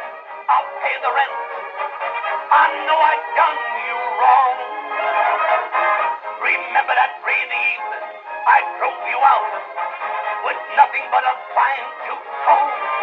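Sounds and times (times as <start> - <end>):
man singing with dance orchestra: 0.4 - 5.5, 6.2 - 13.0.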